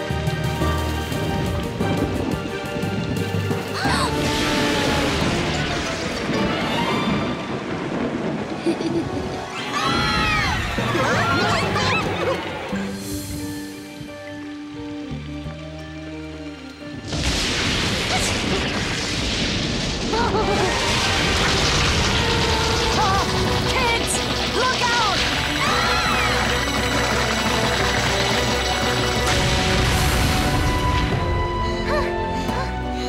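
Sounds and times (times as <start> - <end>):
orchestral cartoon music: 0.0 - 33.0
rainstorm sound effects: 0.0 - 33.0.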